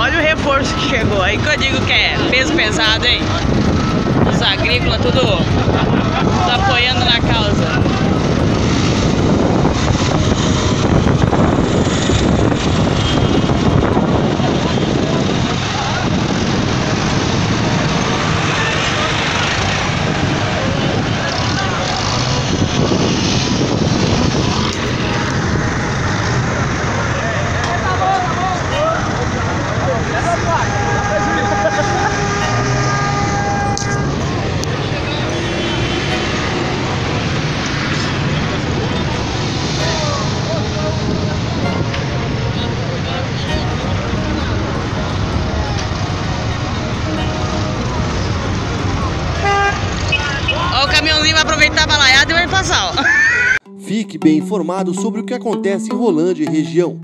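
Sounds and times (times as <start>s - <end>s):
people's voices: 0.0s - 11.1s, 24.6s - 57.0s
tractor engines rumbling: 0.0s - 53.6s.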